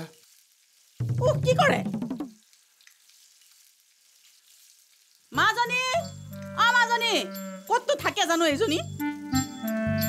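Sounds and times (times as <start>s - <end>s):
food sizzling in a wok: 0.0s - 10.0s
low background music: 7.3s - 10.0s.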